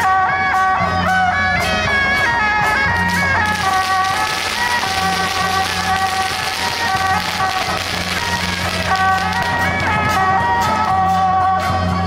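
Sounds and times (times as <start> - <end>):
shrill reed horn melody: 3.3 - 9.9.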